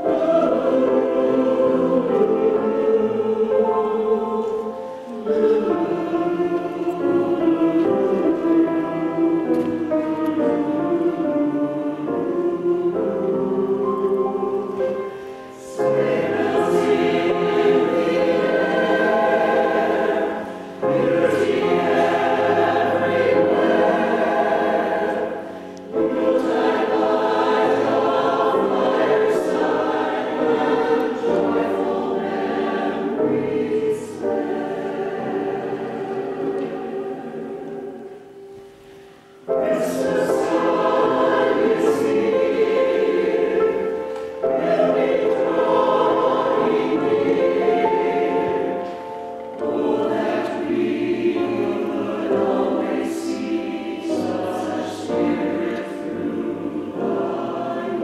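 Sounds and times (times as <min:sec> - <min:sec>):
mixed choir singing in harmony: 0:00.0 - 0:58.0
piano accompaniment: 0:00.0 - 0:58.0.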